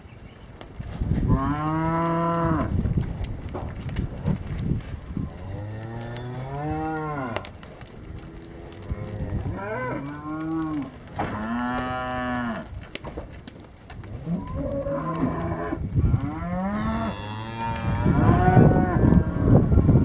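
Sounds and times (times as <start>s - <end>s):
cows mooing: 1.3s - 2.8s, 5.2s - 7.5s, 8.1s - 12.7s, 14.1s - 20.0s.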